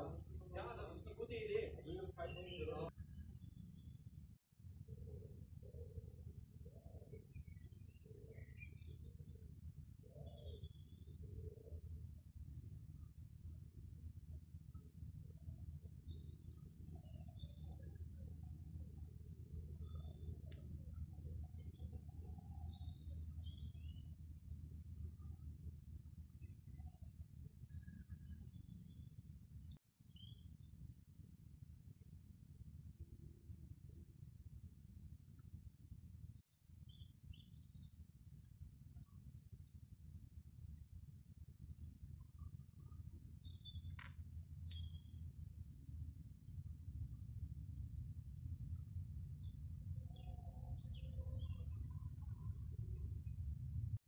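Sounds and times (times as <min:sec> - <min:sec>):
faint bird chirps: 0:00.0 - 0:13.6, 0:14.2 - 0:32.6, 0:36.3 - 0:54.0
low steady rumble: 0:39.6 - 0:54.0.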